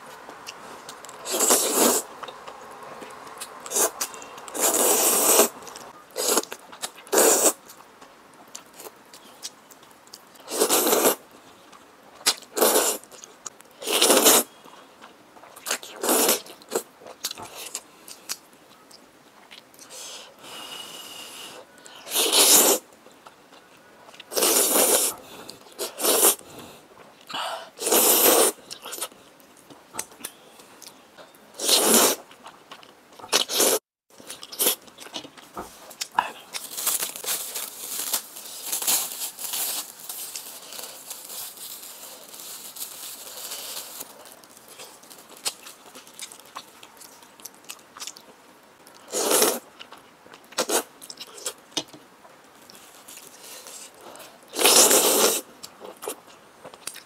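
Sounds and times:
loud noodle slurping: 1.2 - 2.1, 3.7 - 5.6, 7.1 - 7.6, 10.5 - 11.2, 13.8 - 14.5, 22.1 - 22.8, 24.3 - 25.2, 25.8 - 26.4, 27.8 - 28.6, 31.6 - 32.2, 49.1 - 49.6, 54.5 - 55.5
plastic wrapper crinkling: 36.0 - 47.2.

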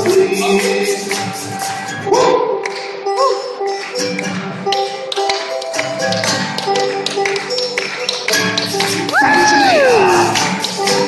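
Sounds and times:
banjo and acoustic guitar: 0.0 - 9.1, 10.3 - 11.0
person whooping: 9.1 - 10.5.

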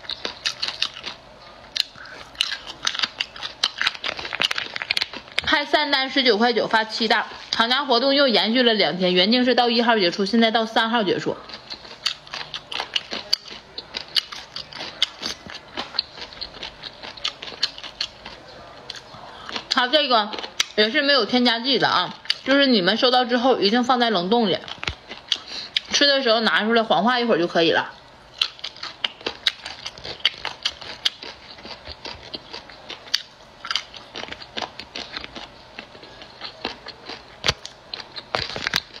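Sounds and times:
crisp crunching clicks: 0.0 - 5.6, 24.6 - 25.4, 28.4 - 39.0
person chewing food: 0.0 - 5.6, 11.3 - 21.0, 22.0 - 22.6, 24.6 - 26.0, 28.0 - 39.0
plastic bag crinkling: 2.0 - 5.6.

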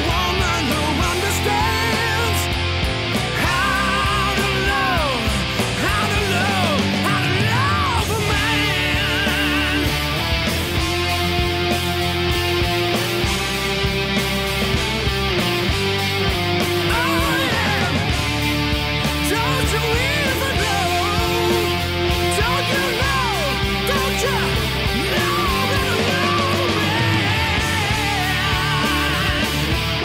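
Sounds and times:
bass notes: 0.0 - 30.0
distorted electric guitar lead: 0.0 - 30.0
drums: 0.0 - 30.0.

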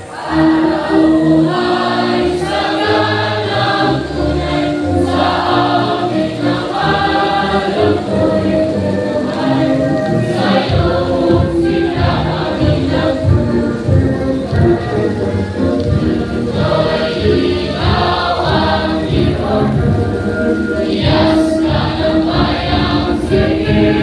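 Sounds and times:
group singing a hymn: 0.0 - 24.0.

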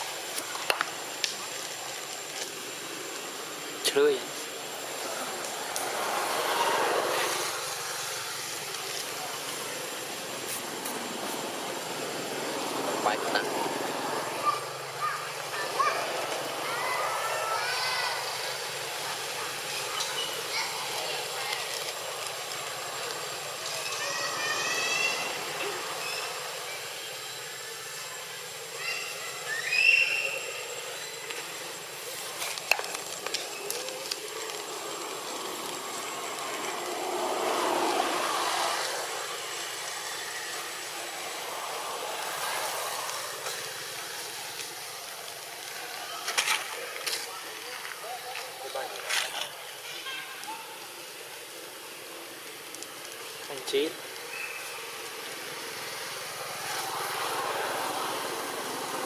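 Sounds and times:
outdoor ambience: 0.0 - 59.0.

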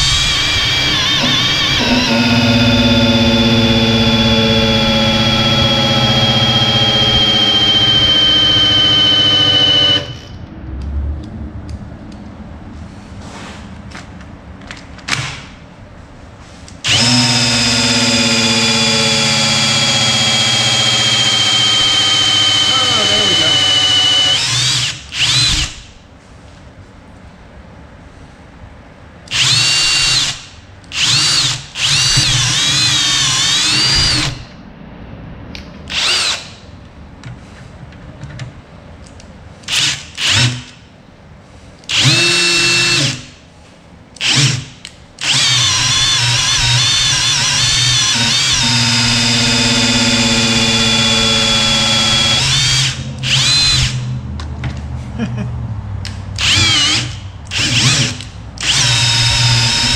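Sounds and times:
cordless drill whining: 0.0 - 10.4, 16.9 - 25.9, 29.3 - 34.5, 35.9 - 36.6, 39.7 - 40.7, 41.9 - 43.3, 44.2 - 54.1, 56.4 - 59.9.

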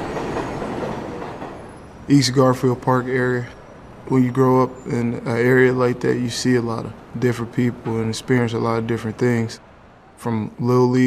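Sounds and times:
train wheels on rails: 0.0 - 4.1.

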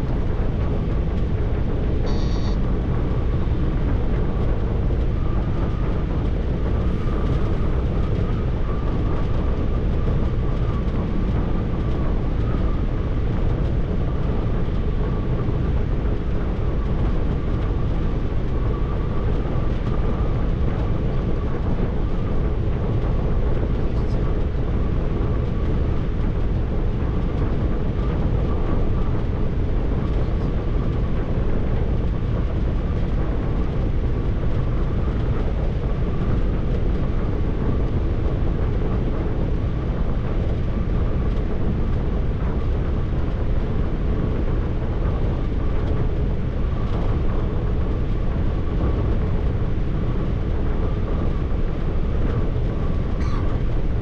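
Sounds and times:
faint steady whine: 0.0 - 54.0.

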